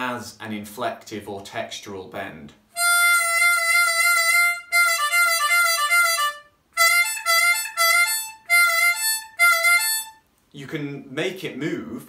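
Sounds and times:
harmonica phrase: 0:02.7 - 0:10.2
harmonica note bending: 0:02.7 - 0:10.3.

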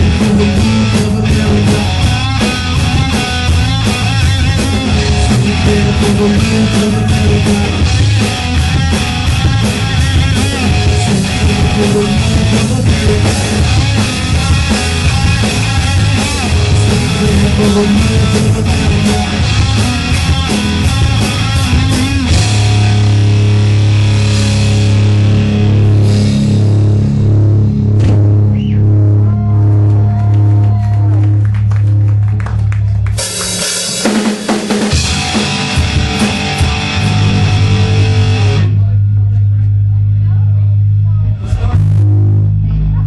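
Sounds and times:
drum kit: 0:00.0 - 0:39.8, 0:41.4 - 0:43.0
electric guitars: 0:00.0 - 0:40.3
bass guitar: 0:00.0 - 0:43.0.

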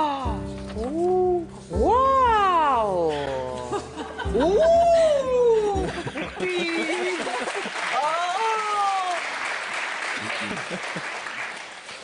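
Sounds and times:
person saying oooh: 0:04.4 - 0:05.8.

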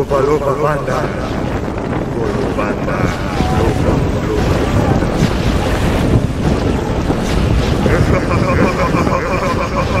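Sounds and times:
small waves lapping at shore: 0:00.0 - 0:10.0
wind on microphone: 0:00.0 - 0:10.0.

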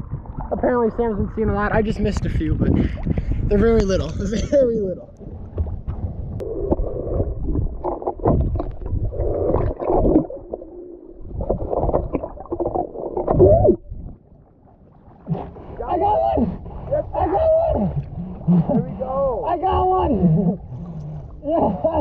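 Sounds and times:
underwater churning and rumbling: 0:00.0 - 0:22.0.

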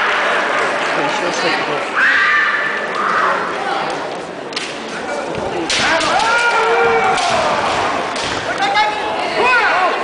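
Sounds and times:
people shouting: 0:05.8 - 0:08.2.

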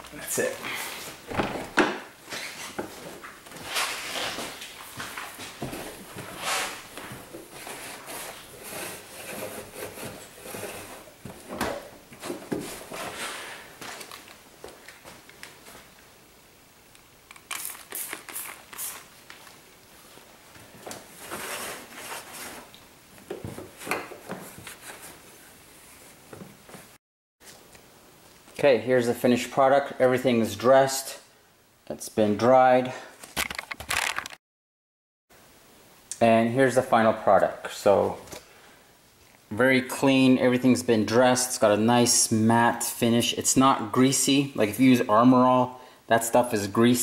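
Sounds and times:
spray bottle squirts: 0:17.5 - 0:19.1.

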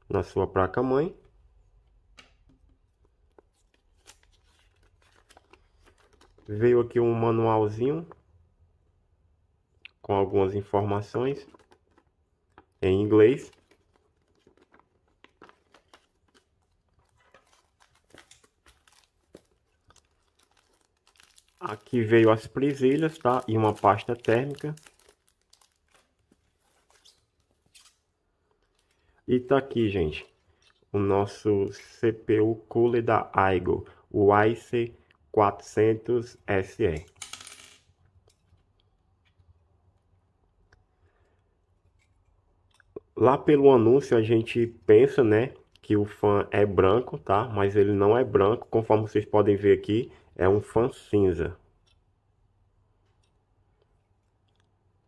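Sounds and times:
paper manual rustling: 0:02.8 - 0:07.0, 0:11.0 - 0:30.9.

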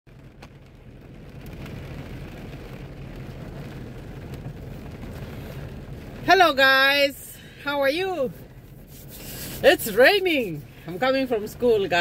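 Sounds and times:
heavy rain on car: 0:00.1 - 0:12.0
raindrop ticks: 0:00.1 - 0:12.0.

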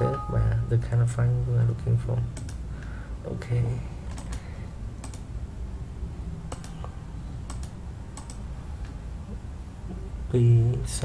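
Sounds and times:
low steady hum: 0:00.0 - 0:11.0
computer mouse clicking: 0:02.4 - 0:02.6, 0:04.1 - 0:05.3, 0:06.5 - 0:09.0.

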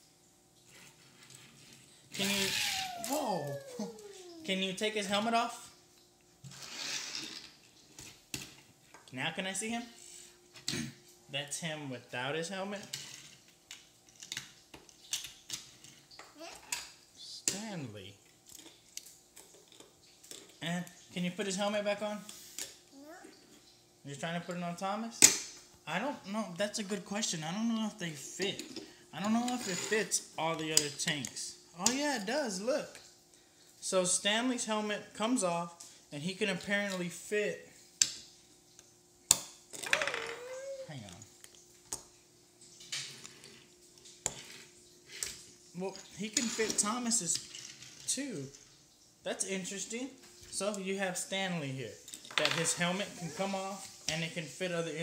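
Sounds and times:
child's wordless vocal sound: 0:02.2 - 0:04.5, 0:16.4 - 0:16.7, 0:22.9 - 0:23.4, 0:40.0 - 0:41.0, 0:52.8 - 0:53.8.

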